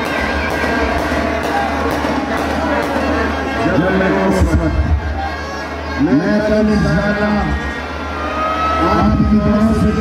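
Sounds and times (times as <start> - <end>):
crowd noise: 0.0 - 10.0
voice over loudspeaker: 3.2 - 7.8, 8.8 - 10.0.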